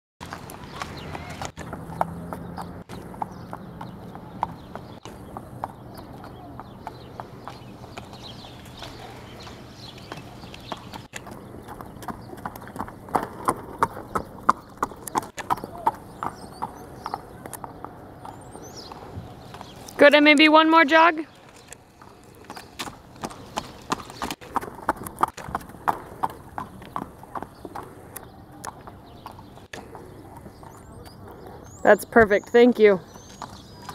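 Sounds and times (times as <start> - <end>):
horse hooves clip-clopping on pavement: 0.2 - 33.9.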